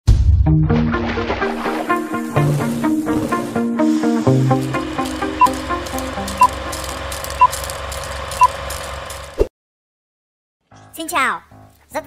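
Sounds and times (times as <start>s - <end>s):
intro jingle music: 0.5s - 7.5s
steady low drone: 3.4s - 8.2s.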